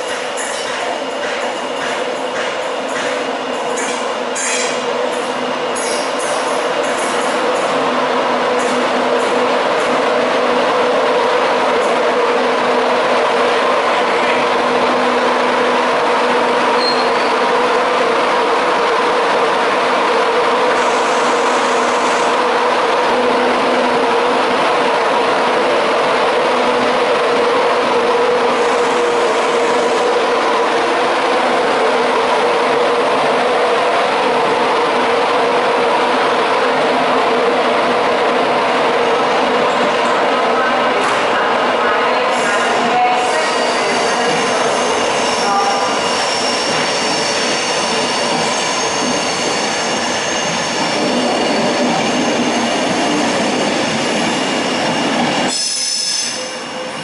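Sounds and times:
steady train hum: 0:00.0 - 0:57.0
train wheels rolling on rails: 0:00.0 - 0:57.0.

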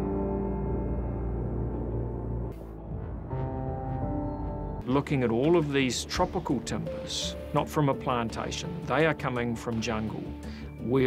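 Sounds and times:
ambient music low tones: 0:00.0 - 0:11.0.

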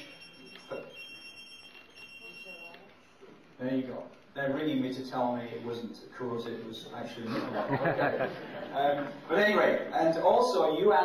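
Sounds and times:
telephone ringing: 0:00.0 - 0:03.2.

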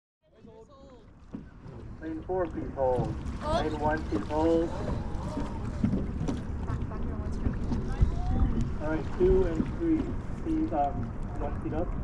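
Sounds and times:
distant voices: 0:01.0 - 0:12.0
wind rumble on microphone: 0:01.6 - 0:12.0.

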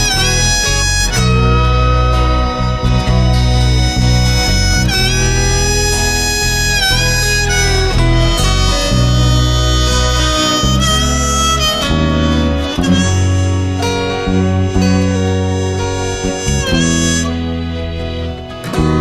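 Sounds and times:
harmonica melody: 0:00.0 - 0:19.0
low bass line: 0:00.0 - 0:19.0
strummed guitar: 0:00.0 - 0:19.0.

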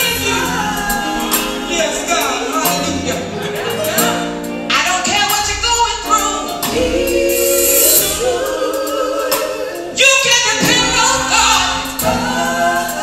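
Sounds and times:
women singing in harmony: 0:00.0 - 0:04.4, 0:06.5 - 0:13.0
bass guitar: 0:00.0 - 0:08.6
drums: 0:00.0 - 0:13.0.

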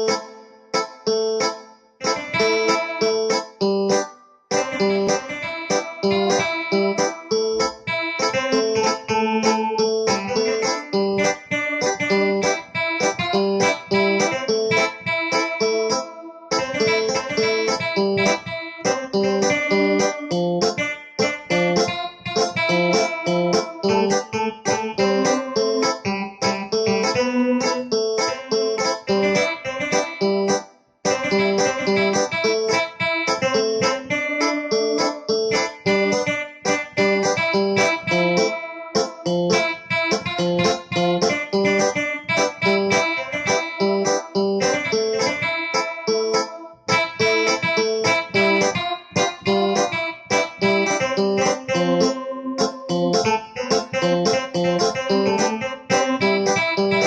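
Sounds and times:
digital piano reggae melody: 0:00.0 - 0:57.0.

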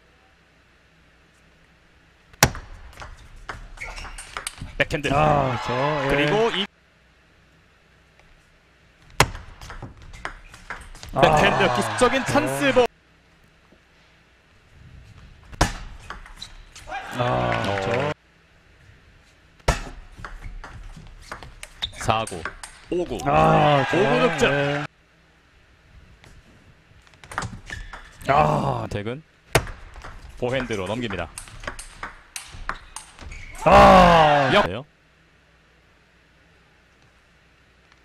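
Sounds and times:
table tennis ball clicks: 0:29.6 - 0:33.2.

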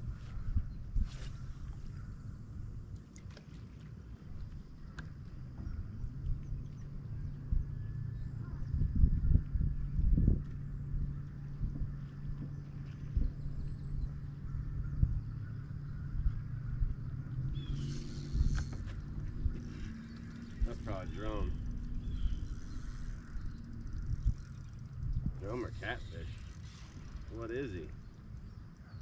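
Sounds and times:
low steady hum: 0:00.0 - 0:29.0
fishing reel ticking and clicking: 0:17.6 - 0:29.0.

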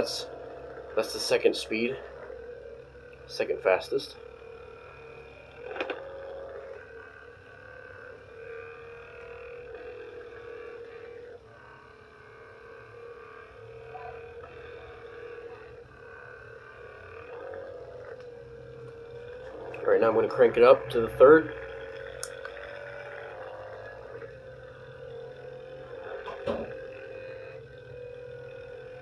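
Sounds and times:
massage gun motor hum: 0:00.0 - 0:29.0.

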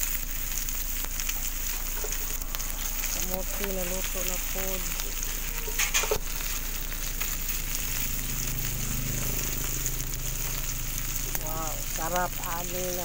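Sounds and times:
meat sizzling on a grill pan: 0:00.0 - 0:13.0.

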